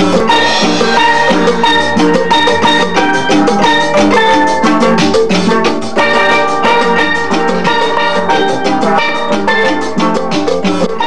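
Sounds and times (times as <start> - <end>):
upbeat music with drum beat: 0.0 - 11.0.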